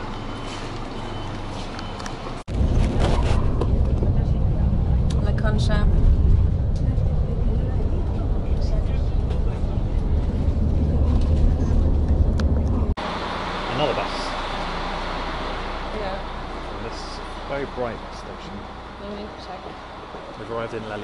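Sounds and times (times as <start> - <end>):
bus engine and road rumble: 0.0 - 21.0.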